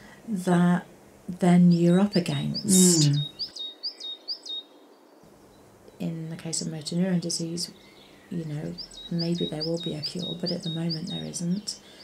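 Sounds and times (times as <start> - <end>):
small bird chirping: 1.6 - 6.0, 7.4 - 12.0.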